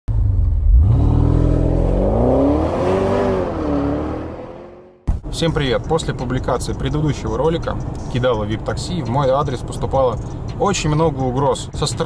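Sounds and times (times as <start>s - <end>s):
car engine revving: 0.1s - 8.0s.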